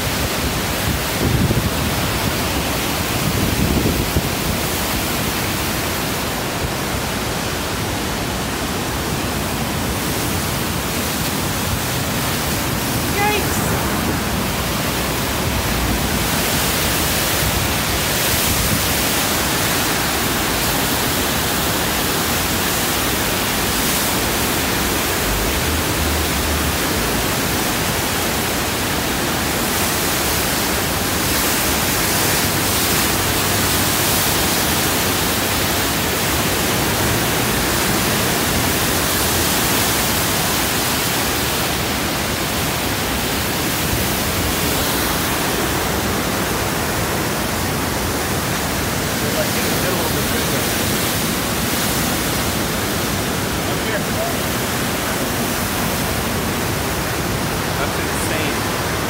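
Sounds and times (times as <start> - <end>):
river rushing through rapids: 0.0 - 59.0.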